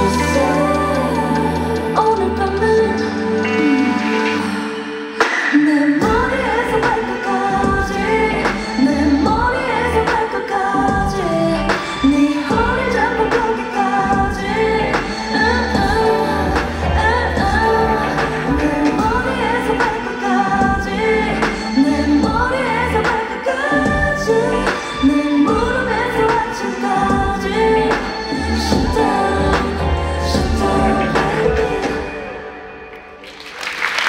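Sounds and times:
woman singing pop song: 0.0s - 33.2s
deep bass beat: 14.1s - 19.9s, 23.8s - 26.4s, 27.0s - 31.9s.

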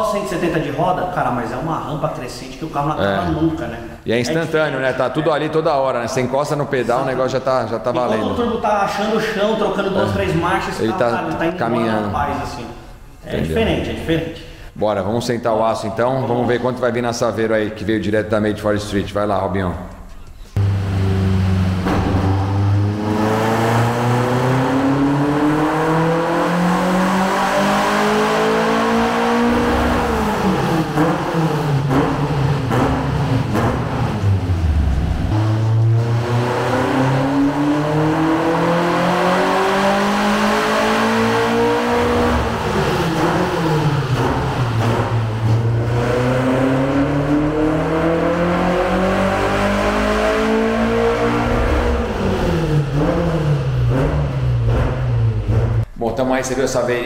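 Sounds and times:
car engine revving: 20.6s - 55.9s.

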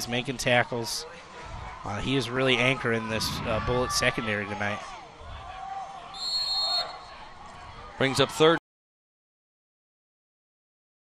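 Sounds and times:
crowd and distant voices: 0.0s - 8.6s
high-pitched whistle blast: 6.2s - 7.1s.

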